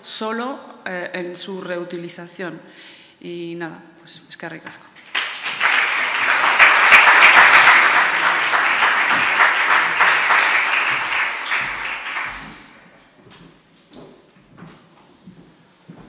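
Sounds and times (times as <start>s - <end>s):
audience applauding: 5.0s - 12.8s.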